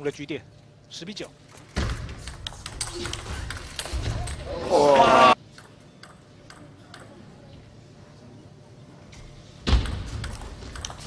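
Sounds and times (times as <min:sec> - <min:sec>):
table tennis ball bouncing: 0:05.5 - 0:07.2, 0:09.7 - 0:11.0.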